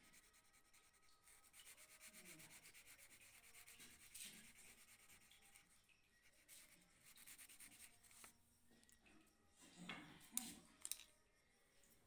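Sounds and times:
pencil scratching on paper: 0.0 - 8.3.

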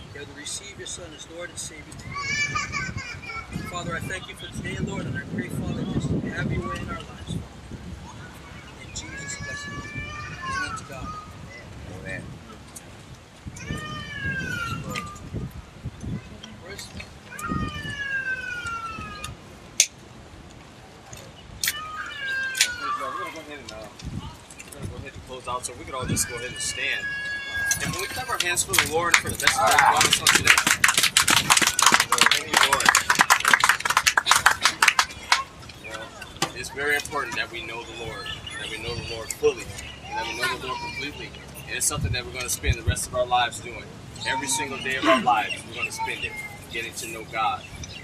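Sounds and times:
low murmuring: 20.6 - 48.0
congregation clapping: 27.8 - 35.7.

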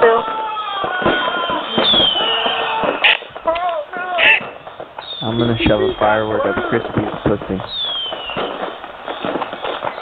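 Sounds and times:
voices talking over phone line: 1.4 - 7.8.

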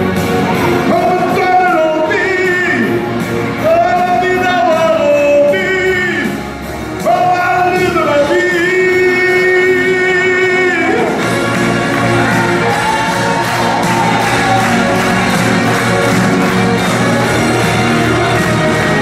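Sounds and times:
instrumental backing track: 0.0 - 19.0
man singing through pa system: 0.9 - 11.2.

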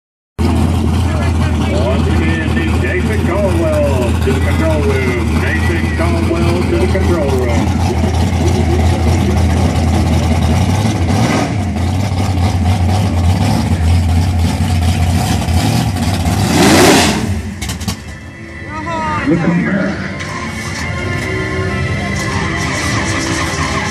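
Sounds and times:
car engine revving: 0.4 - 23.9
car engines idling: 0.4 - 23.9
voices: 1.0 - 10.2, 18.6 - 23.9.

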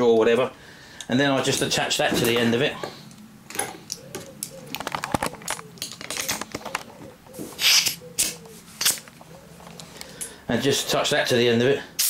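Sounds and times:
air hiss bursts: 7.6 - 8.0.

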